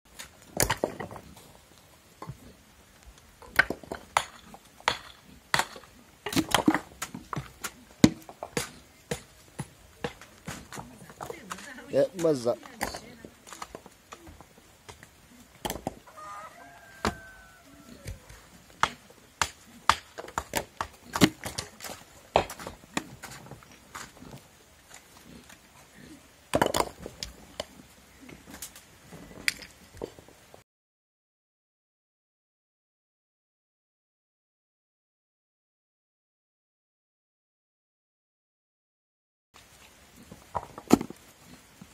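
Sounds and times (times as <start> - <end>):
faint low animal calls: 15.2 - 19.2.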